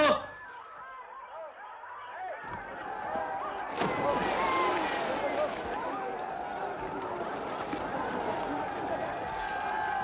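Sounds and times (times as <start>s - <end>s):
crowd shouting: 0.0s - 10.0s
people diving into water: 2.4s - 10.0s
water splashing: 3.7s - 9.5s.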